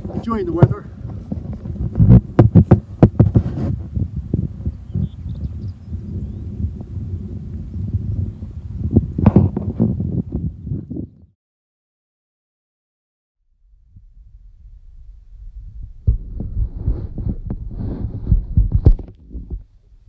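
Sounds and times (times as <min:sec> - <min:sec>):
wind buffeting microphone: 0:00.0 - 0:11.3, 0:13.8 - 0:20.0.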